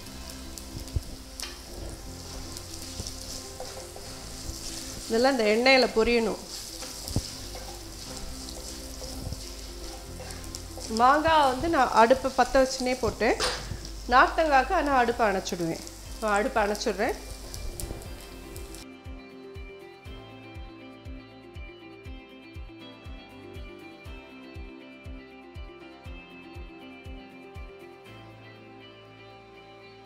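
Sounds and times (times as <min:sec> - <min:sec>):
food sizzling in hot oil: 0:00.0 - 0:18.9
woman talking: 0:05.1 - 0:06.4, 0:10.9 - 0:17.2.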